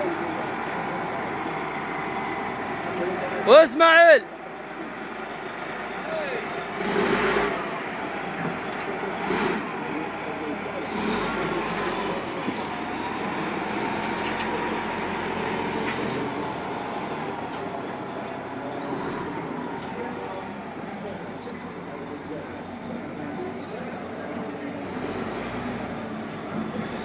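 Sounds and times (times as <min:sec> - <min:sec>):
wheel loader diesel engine running: 0:00.0 - 0:27.0.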